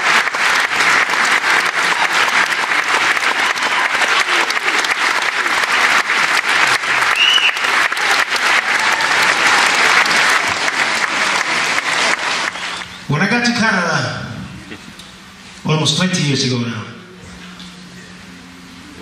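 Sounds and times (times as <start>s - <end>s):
audience applauding: 0.0s - 13.1s.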